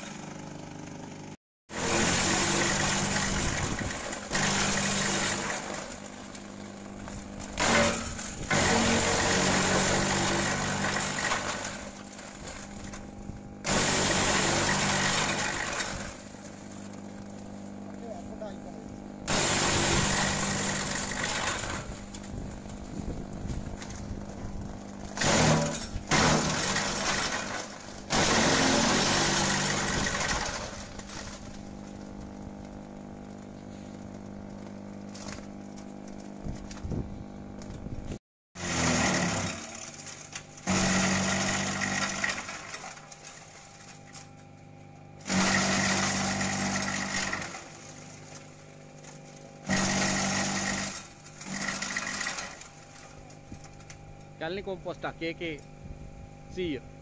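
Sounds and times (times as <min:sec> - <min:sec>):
shredder chopping branches: 0:00.0 - 0:56.9.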